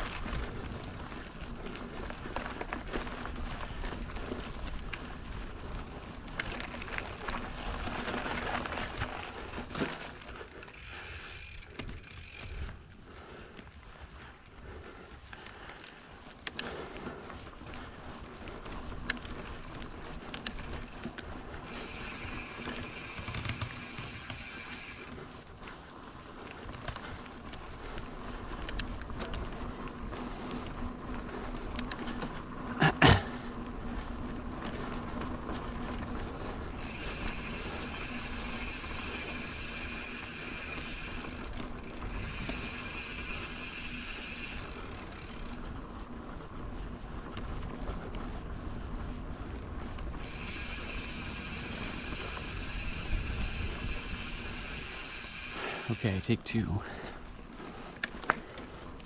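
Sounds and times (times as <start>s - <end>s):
bike tyre and drivetrain noise: 0.0s - 59.0s
freewheel hub ticking: 36.8s - 45.7s, 50.2s - 56.3s.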